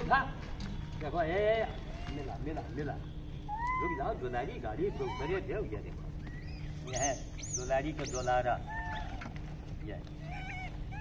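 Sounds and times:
monkey coo calls: 1.7 - 11.0.

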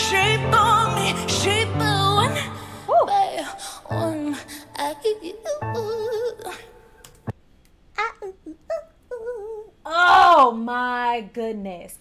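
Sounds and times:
woman vocalising excitedly: 2.9 - 3.6, 8.0 - 10.6.

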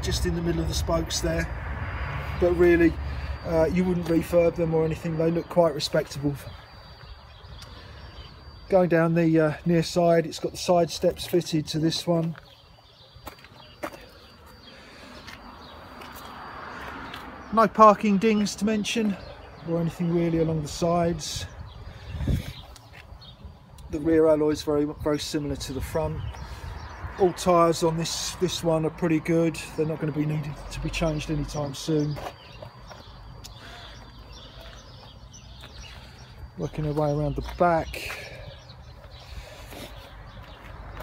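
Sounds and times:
man's voice: 0.0 - 1.5, 36.6 - 38.3.

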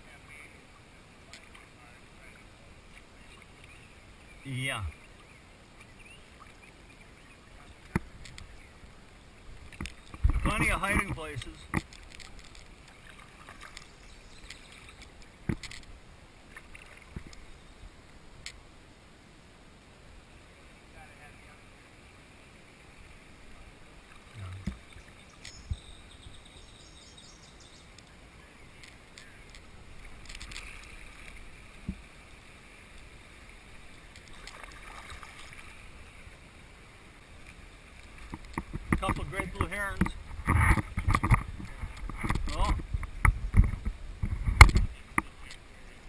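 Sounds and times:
water lapping against hull: 0.3 - 15.8, 28.6 - 46.0
kayak paddle strokes: 4.8 - 17.6, 27.8 - 46.0.

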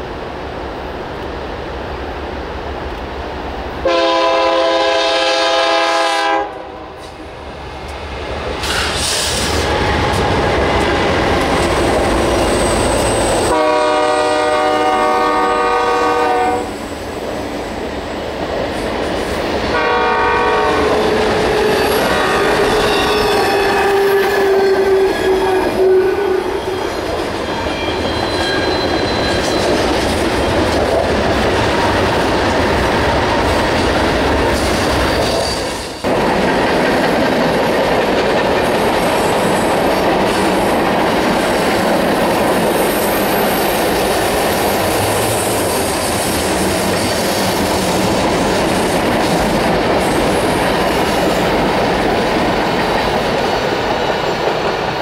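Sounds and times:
train wheels rumbling on rails: 0.0 - 55.0
locomotive horn blast: 3.8 - 7.0, 13.5 - 16.7, 19.7 - 26.6.

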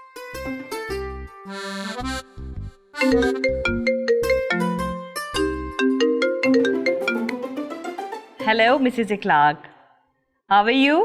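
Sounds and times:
mobile phone ringtone: 3.0 - 7.3.

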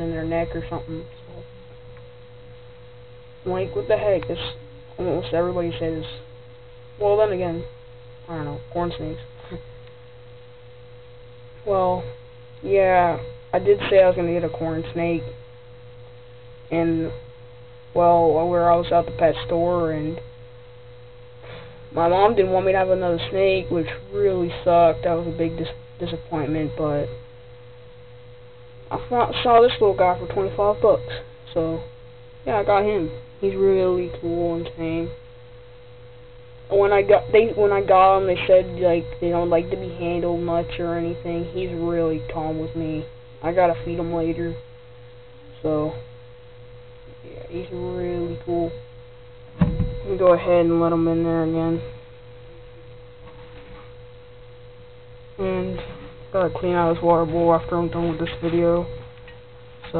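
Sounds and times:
person speaking: 0.0 - 1.5, 3.4 - 6.2, 7.0 - 7.7, 8.3 - 9.6, 11.6 - 15.3, 16.7 - 17.2, 17.9 - 20.2, 21.5 - 27.1, 28.9 - 31.8, 32.4 - 35.1, 36.7 - 44.6, 47.2 - 48.8, 50.0 - 51.9, 55.4 - 59.0
low electrical hum: 0.0 - 59.9
thin steady tone: 0.0 - 59.9.

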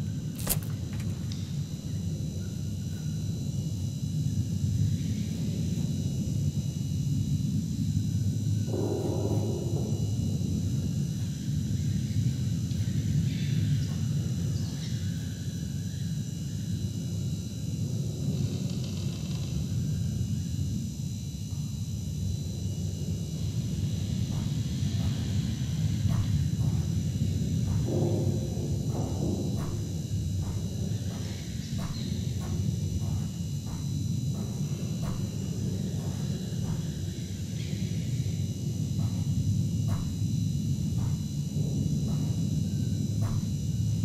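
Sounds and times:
faint high hum: 0.0 - 44.0
low rumbling drone: 8.2 - 16.0, 22.0 - 44.0.

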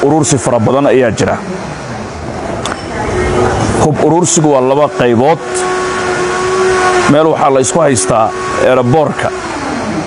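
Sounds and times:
constant humming tone: 0.0 - 10.0.

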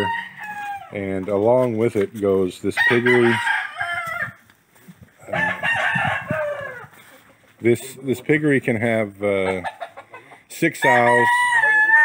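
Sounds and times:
rooster crowing: 0.0 - 0.9, 2.8 - 4.4, 5.3 - 7.0, 10.8 - 12.0.

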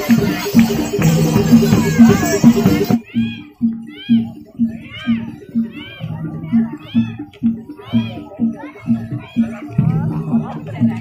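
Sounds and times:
low drum beat: 0.0 - 11.0.

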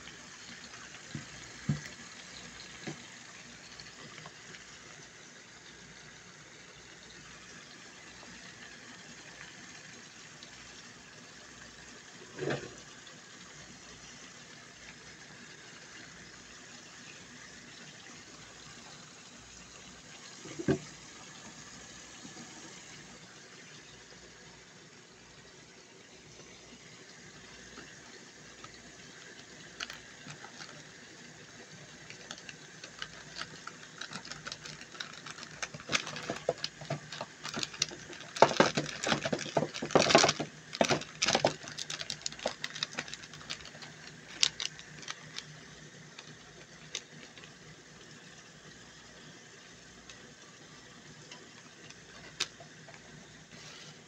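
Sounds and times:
oil spitting and crackling: 27.2 - 48.4, 51.0 - 53.7.

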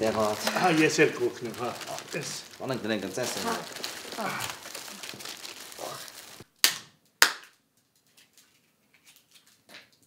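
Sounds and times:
plastic wrapping crinkling: 0.0 - 6.5
walnut shells cracking: 0.1 - 6.8.

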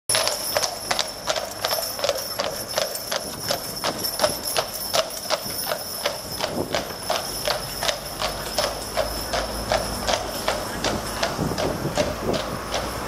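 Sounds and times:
horse hooves clip-clopping on road: 0.1 - 13.0.

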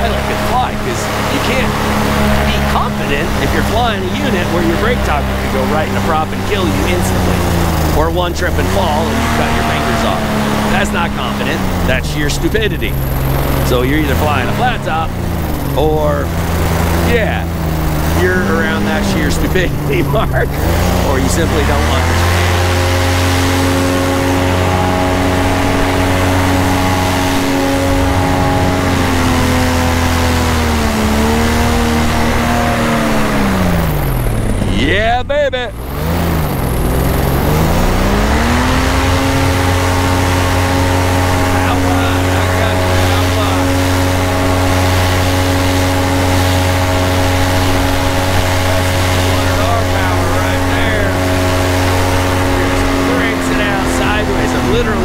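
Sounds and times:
paramotor engine and propeller: 0.0 - 55.0.

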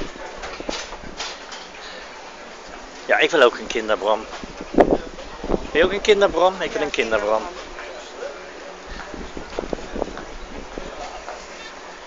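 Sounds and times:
busy outdoor market noise: 0.0 - 12.0.

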